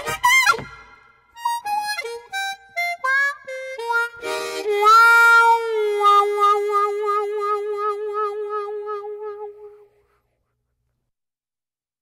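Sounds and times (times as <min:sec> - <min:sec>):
harmonica warbling long note: 0:01.4 - 0:09.9.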